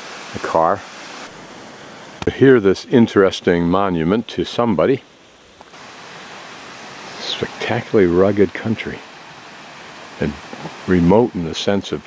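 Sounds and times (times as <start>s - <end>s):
steady outdoor hiss: 0.0s - 12.0s.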